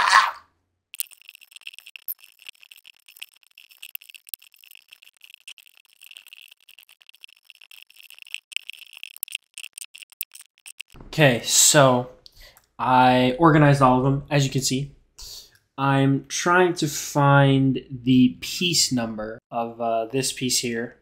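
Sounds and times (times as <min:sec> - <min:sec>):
plastic bricks clicking and rattling: 0:00.0 - 0:00.4, 0:01.0 - 0:11.0.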